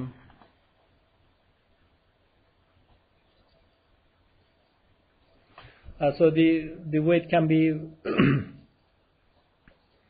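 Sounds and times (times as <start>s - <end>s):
man coughing: 8.0s - 8.6s.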